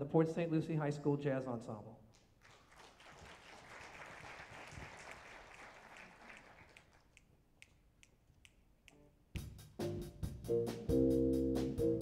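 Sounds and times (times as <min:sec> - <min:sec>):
faint applause: 0:02.4 - 0:07.2.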